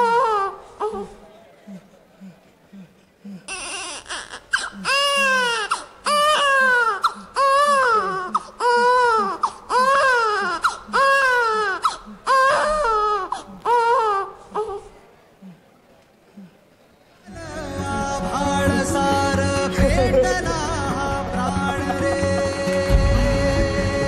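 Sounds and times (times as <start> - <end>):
infant crying: 0.0 - 1.2, 3.5 - 15.0.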